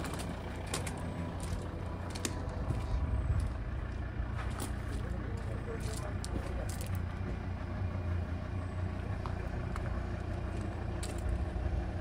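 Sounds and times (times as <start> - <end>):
footsteps on gravel: 0.0 - 7.4, 9.2 - 11.4
diesel engine idling: 0.0 - 12.0.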